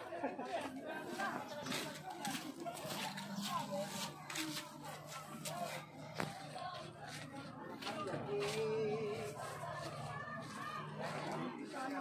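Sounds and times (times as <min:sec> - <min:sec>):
indistinct chatter: 0:00.0 - 0:12.0.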